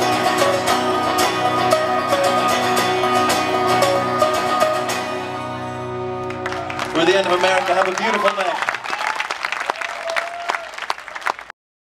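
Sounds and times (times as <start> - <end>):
audience clapping and cheering: 6.2 - 11.6.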